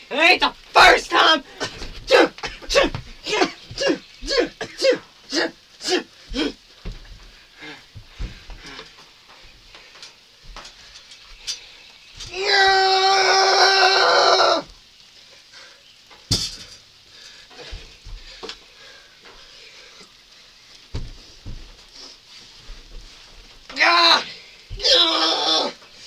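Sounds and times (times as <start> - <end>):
young person yelling: 0.1 - 1.5, 23.7 - 25.8
thumps from wrestling on bed: 6.3 - 8.6, 20.9 - 21.9.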